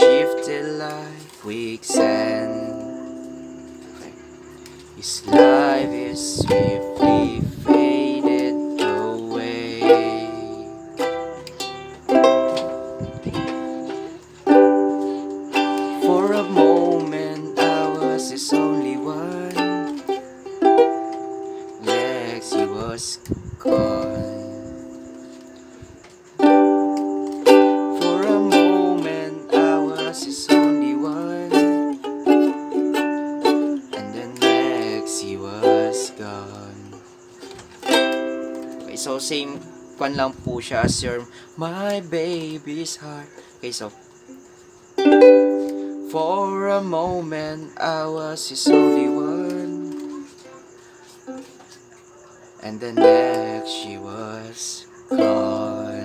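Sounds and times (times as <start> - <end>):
ukulele strumming: 0.0 - 25.6, 26.4 - 40.0, 45.0 - 51.6, 52.8 - 54.5, 55.1 - 56.0.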